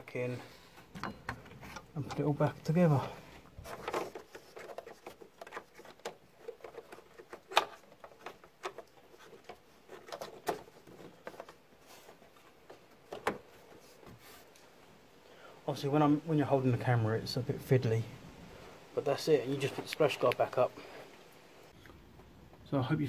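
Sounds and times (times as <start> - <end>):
hands handling plastic trim: 3.3 - 14.6.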